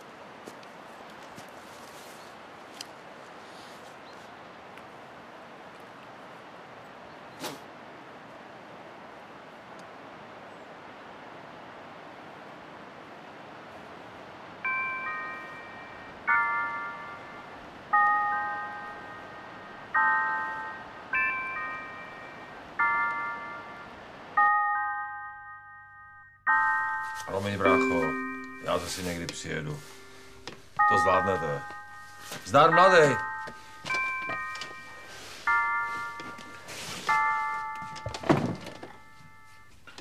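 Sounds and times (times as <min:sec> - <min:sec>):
steady background hiss: 0:00.0 - 0:25.3, 0:26.5 - 0:40.0
ringing bell-like chords: 0:14.6 - 0:39.8.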